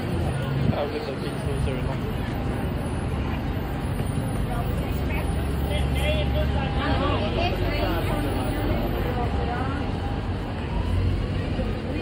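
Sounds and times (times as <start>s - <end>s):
indistinct crowd chatter: 0.0s - 12.0s
road traffic rumble: 0.0s - 12.0s.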